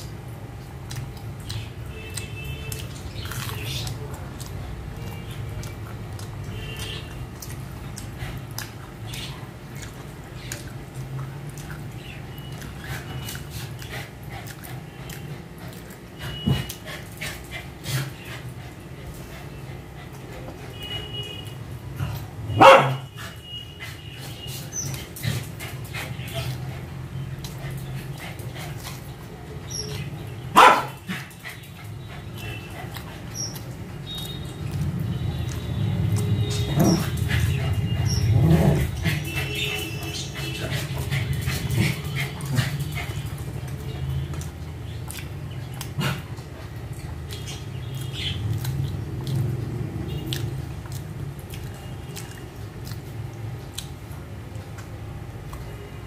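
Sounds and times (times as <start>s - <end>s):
small dog barking: 22.5s - 23.1s, 30.5s - 31.2s.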